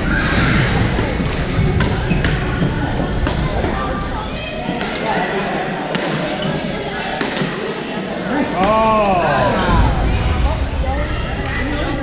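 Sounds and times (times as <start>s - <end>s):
players chattering: 0.0s - 12.0s
sneakers squeaking on court: 2.0s - 2.6s.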